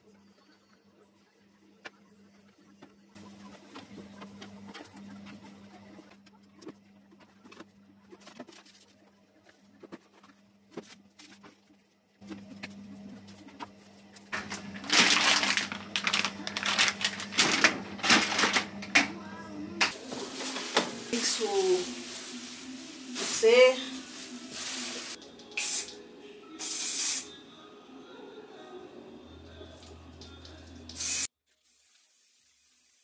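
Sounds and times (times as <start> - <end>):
plastic packaging crinkling: 14.4 - 18.9, 19.9 - 25.2
spray paint can hissing: 24.7 - 26.0, 26.6 - 27.3, 30.9 - 33.0.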